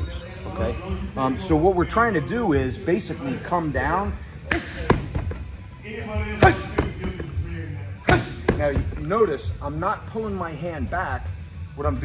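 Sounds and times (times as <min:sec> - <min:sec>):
palm slapping training dummy: 0:04.4 - 0:05.5, 0:06.4 - 0:07.2, 0:08.0 - 0:09.2.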